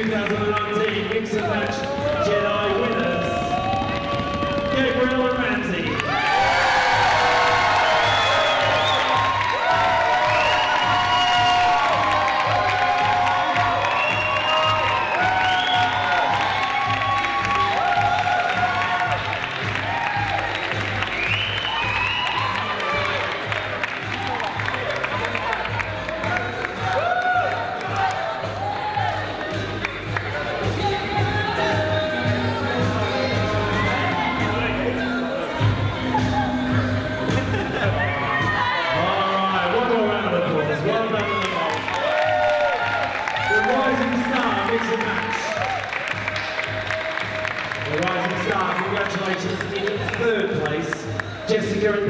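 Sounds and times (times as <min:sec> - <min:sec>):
music with steady beat: 0:00.0 - 0:05.9, 0:06.8 - 0:39.1
crowd applauding and cheering: 0:00.0 - 0:52.0.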